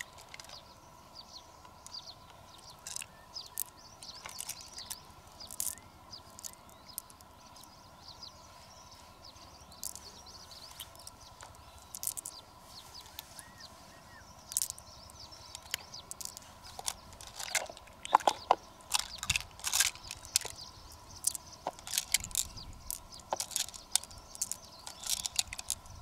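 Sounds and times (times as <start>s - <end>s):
beads clicking: 0.0s - 0.6s, 2.6s - 7.7s, 9.6s - 13.4s, 14.4s - 26.0s.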